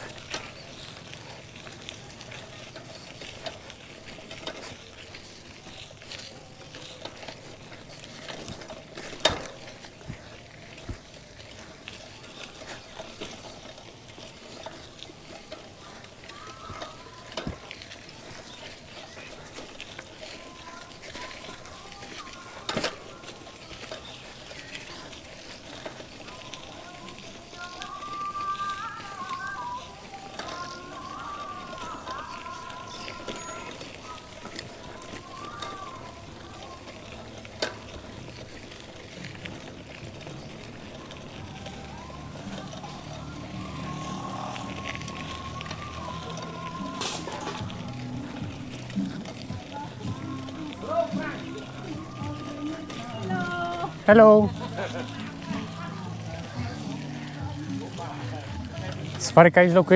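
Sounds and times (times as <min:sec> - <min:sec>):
bike knocking over bumps: 0:00.0 - 0:59.2
bicycle tyres crackling on grit: 0:00.0 - 0:59.9.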